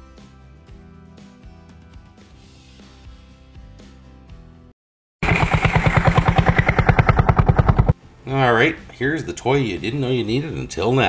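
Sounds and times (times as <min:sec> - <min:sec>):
small diesel engine running: 0:05.2 - 0:08.0.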